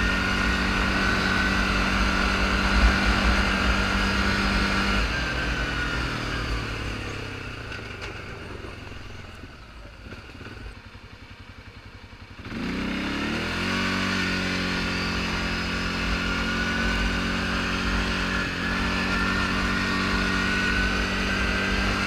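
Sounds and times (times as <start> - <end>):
quad engine accelerating: 0.0 - 22.0.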